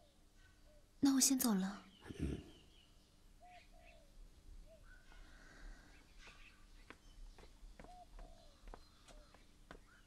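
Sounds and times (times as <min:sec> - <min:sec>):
faint bird calls: 0:00.0 - 0:10.0.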